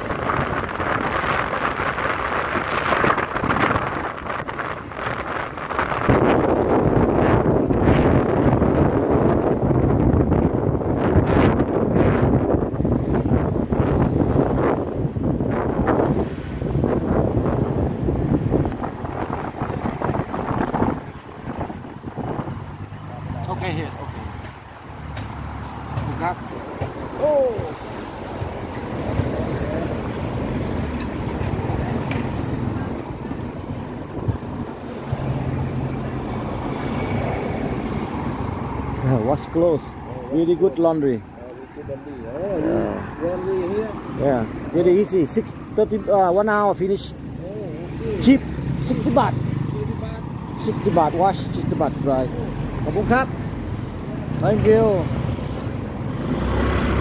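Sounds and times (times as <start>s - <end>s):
passing vehicle engine hum: 0.0s - 44.9s, 47.2s - 57.0s
street traffic: 0.0s - 57.0s
wind buffeting microphone: 0.0s - 57.0s.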